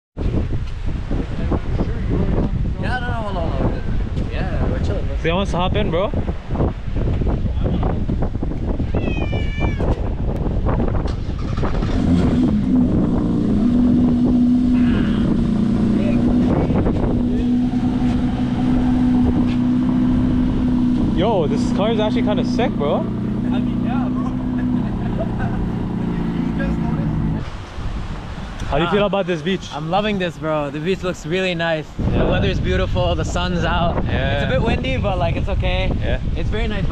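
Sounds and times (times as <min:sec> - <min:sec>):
wind buffeting microphone: 0:00.2 - 0:36.9
high-pitched cat meow: 0:08.8 - 0:10.1
vehicle engine humming: 0:10.3 - 0:29.8.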